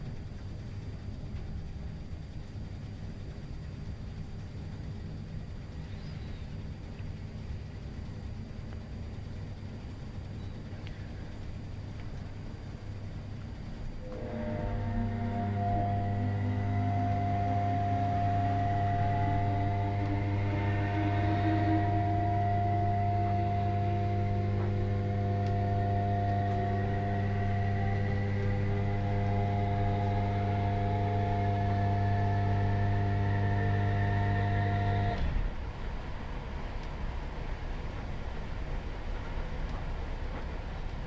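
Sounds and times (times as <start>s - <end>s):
electric train equipment whine: 0.0s - 41.0s.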